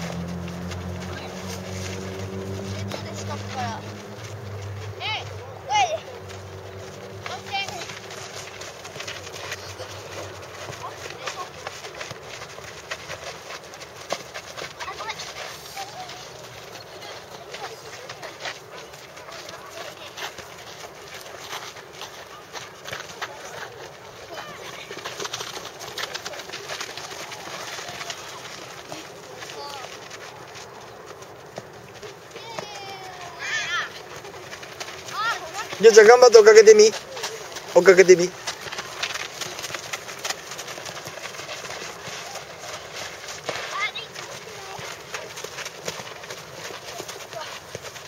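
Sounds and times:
children running on dirt: 0.0 - 48.0
faint outdoor background: 0.0 - 48.0
children's voices: 2.6 - 4.2, 4.8 - 12.0, 14.5 - 30.7, 32.2 - 35.8, 38.4 - 47.8
children calling out: 32.3 - 35.9.

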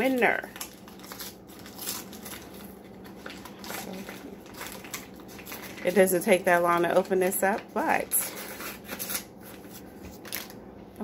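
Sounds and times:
package rustling and clicking: 0.1 - 6.0, 7.2 - 10.6.

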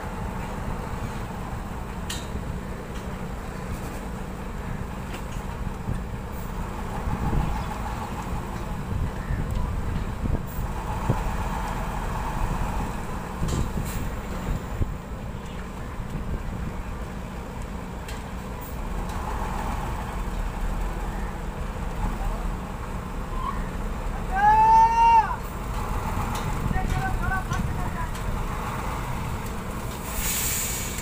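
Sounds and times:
truck diesel engine running: 0.0 - 24.4, 25.2 - 31.0.

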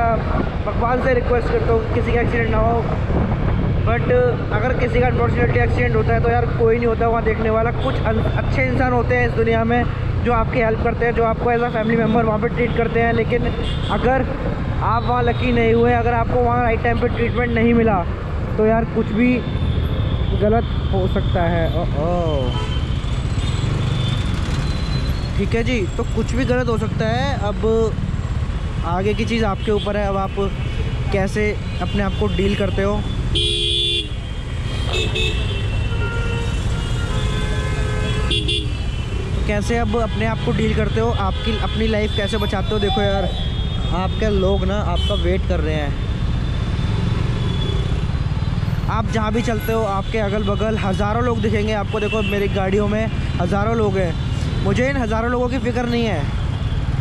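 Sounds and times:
road noise: 0.0 - 57.0
rumble of traffic engines: 0.0 - 57.0.

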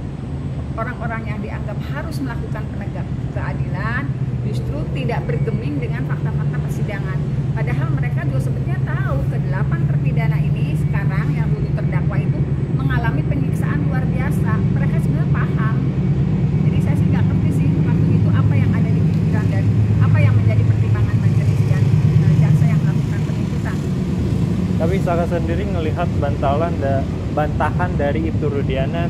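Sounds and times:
voices talking: 0.8 - 29.0
motor vehicle engine idling: 1.7 - 29.0.

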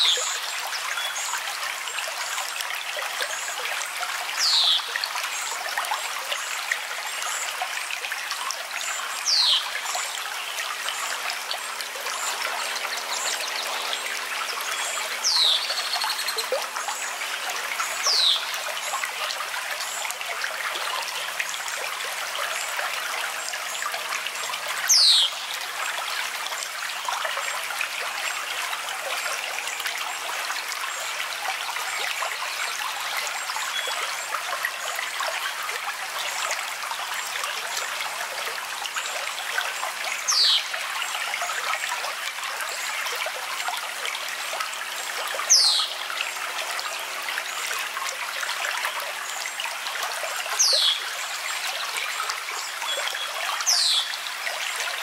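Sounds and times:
trickling running water: 0.0 - 55.0.

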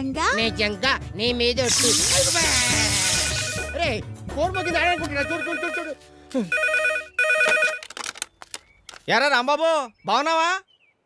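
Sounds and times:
payphone ringing: 3.2 - 3.8, 4.6 - 8.0.

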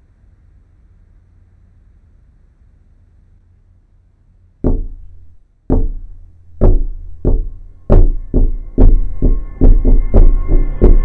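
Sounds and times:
deep percussive hits: 4.6 - 11.0
held tone: 4.7 - 11.0.

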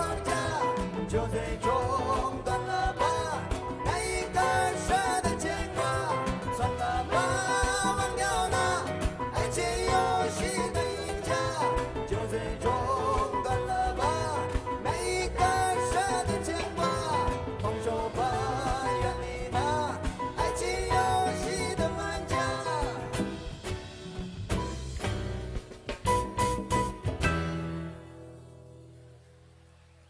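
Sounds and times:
man singing: 0.0 - 23.6
drum kit: 0.0 - 29.0
bass line: 0.0 - 30.0.

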